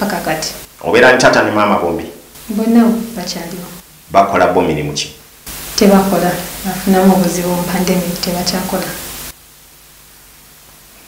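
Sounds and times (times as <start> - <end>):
person speaking: 0.0 - 9.3
microphone hiss: 0.0 - 11.0.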